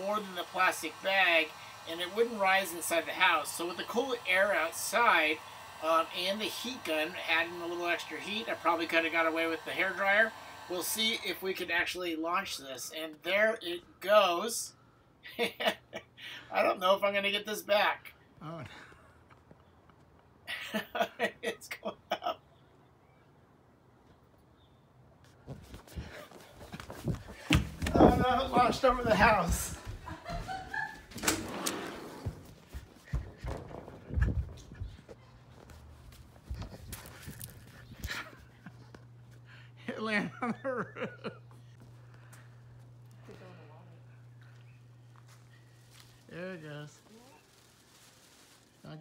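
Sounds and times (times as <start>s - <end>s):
man laughing: 15.2s - 16.3s, 18.4s - 19.2s, 20.4s - 22.6s, 27.9s - 31.2s, 38.0s - 41.8s
steady low hum: 32.3s - 47.7s.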